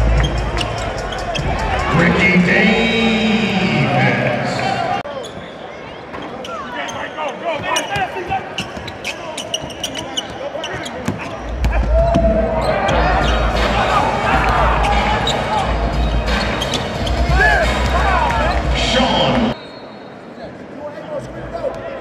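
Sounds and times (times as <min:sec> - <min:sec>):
voices of players and crowd: 0:00.0 - 0:22.0.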